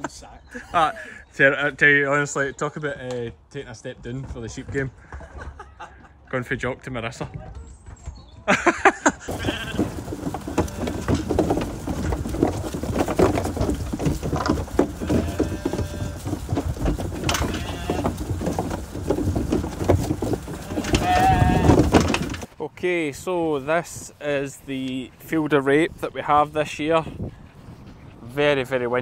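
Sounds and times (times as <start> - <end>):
scattered knocks: 9.2 - 22.5
lambs bleating: 9.3 - 11.3, 14.9 - 16.4, 17.2 - 18.2, 20.5 - 22.0
wind buffeting microphone: 23.8 - 29.0.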